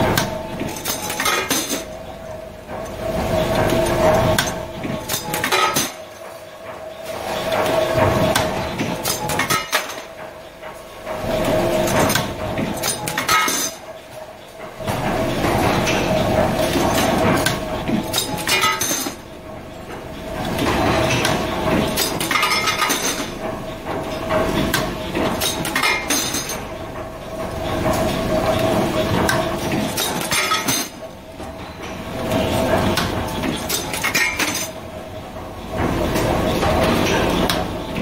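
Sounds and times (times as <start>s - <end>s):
steady machine hum: 0.0s - 38.0s.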